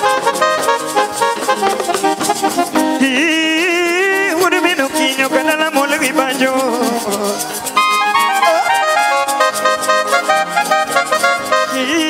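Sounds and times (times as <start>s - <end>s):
fast ticking percussion: 0.0s - 12.0s
held keyboard chords: 0.0s - 12.0s
person singing: 1.6s - 12.0s.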